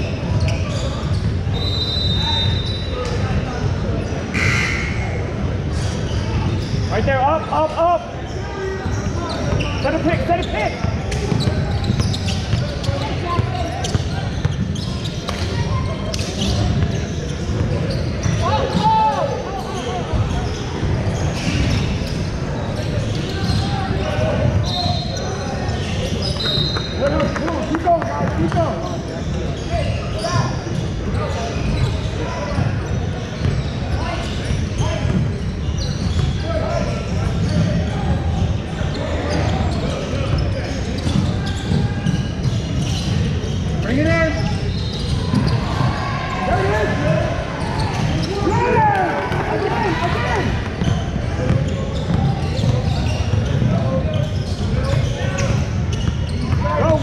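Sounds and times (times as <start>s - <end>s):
basketball bouncing on court: 10.7s - 18.8s, 35.0s - 36.4s, 44.4s - 46.0s, 50.4s - 57.0s
shouts and voices: 45.3s - 50.7s.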